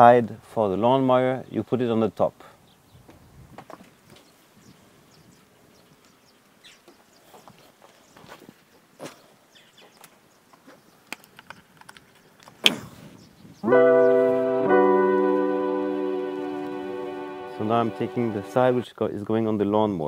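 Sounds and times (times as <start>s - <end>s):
cable rustling on brick paving: 9.9s - 12.7s
electric piano music: 13.6s - 18.8s.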